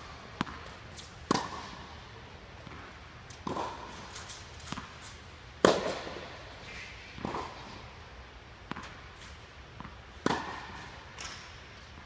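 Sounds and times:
tennis ball struck by racket: 0.3 - 1.9, 2.6 - 5.0, 5.6 - 6.3, 7.2 - 7.8, 8.6 - 9.0, 9.8 - 11.4.

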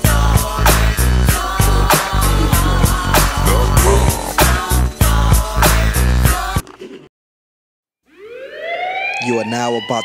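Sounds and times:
siren winding up: 8.1 - 10.0.

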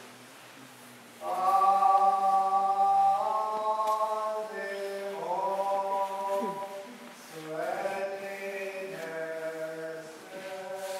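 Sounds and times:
liturgical chant in long notes: 1.2 - 10.9.

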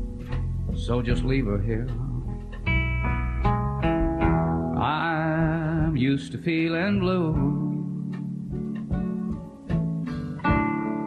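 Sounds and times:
country guitar picked notes: 0.0 - 11.0.

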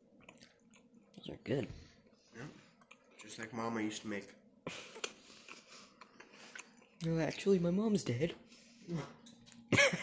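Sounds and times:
faint chewing: 0.0 - 3.7, 4.7 - 7.4.

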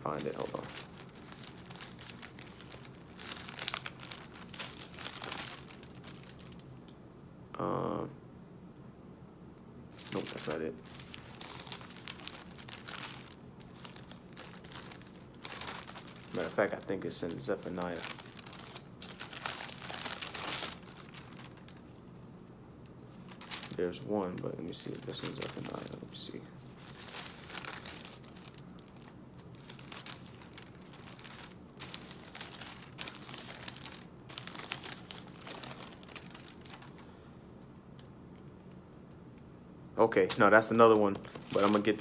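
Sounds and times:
thin paper pages rustling: 0.0 - 6.6, 10.0 - 21.9, 23.1 - 37.0, 40.4 - 42.0
book pages rustling: 26.8 - 37.0.

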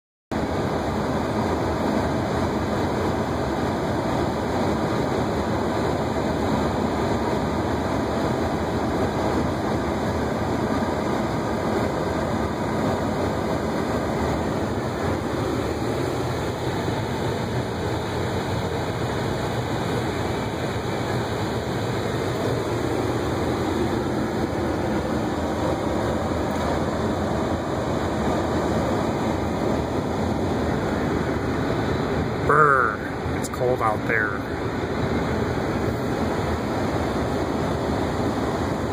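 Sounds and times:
strong wind blowing: 0.5 - 33.7.

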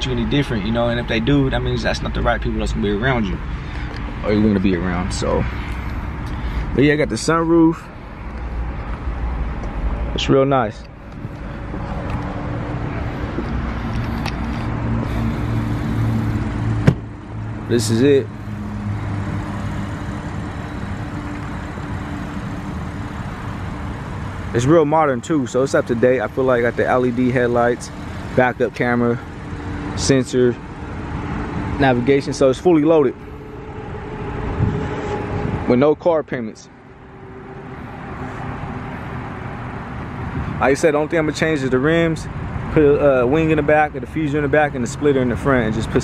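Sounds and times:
car engine idling: 0.0 - 46.0
outdoor background noise: 0.0 - 46.0
car door shutting: 16.7 - 17.1.

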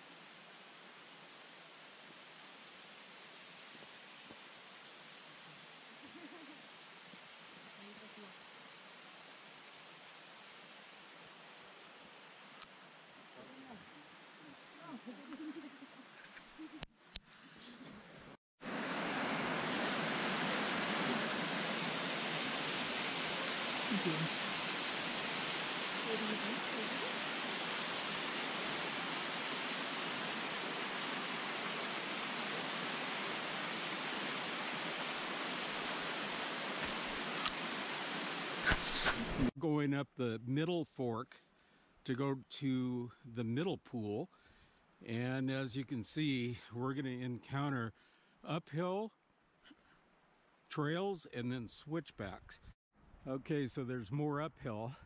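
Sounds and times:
waterfall rushing: 18.7 - 39.5
faint even hiss: 20.8 - 39.5.

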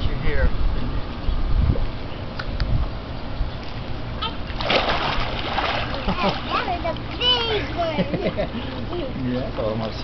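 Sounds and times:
wind rumble on microphone: 0.0 - 3.6
water splash: 4.5 - 6.5.

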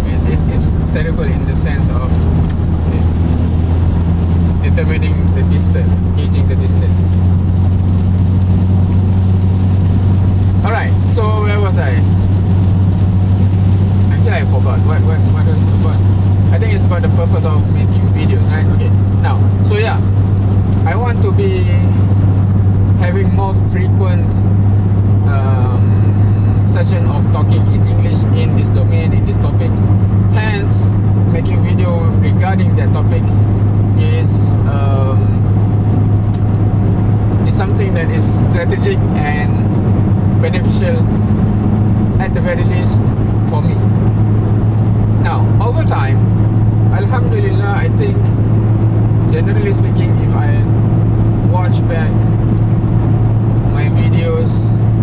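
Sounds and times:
car engine drone: 0.0 - 55.0
road noise in rain: 0.0 - 55.0.

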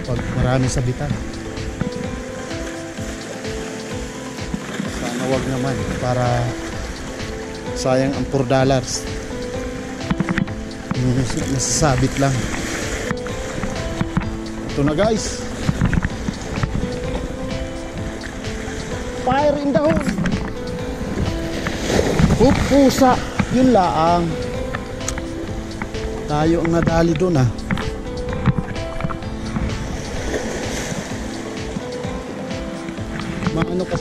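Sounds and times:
small waves breaking on rocks: 0.0 - 9.3
background music with held notes: 0.0 - 34.0
wave washing over boulders: 0.0 - 34.0.

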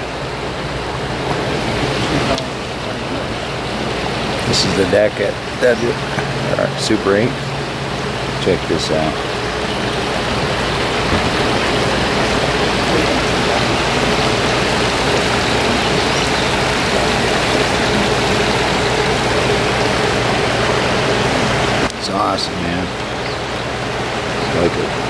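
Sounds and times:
creek rushing over stones: 0.0 - 25.0
faint steady hum: 0.0 - 25.0.

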